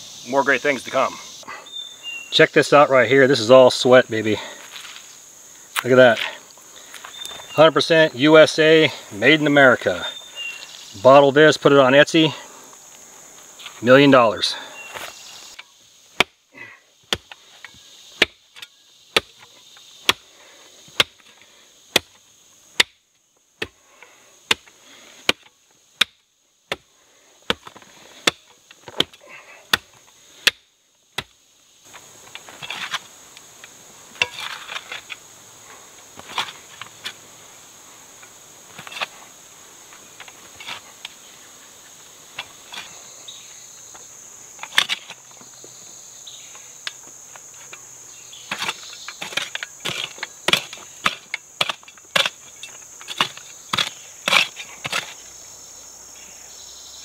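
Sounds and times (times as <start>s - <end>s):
high insect chorus: 0.0s - 57.0s
shovel chopping into clay soil: 21.0s - 21.3s, 48.5s - 55.2s.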